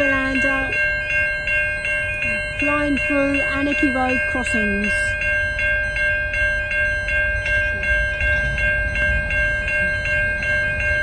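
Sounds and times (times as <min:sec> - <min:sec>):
level crossing warning bells: 0:00.0 - 0:11.0.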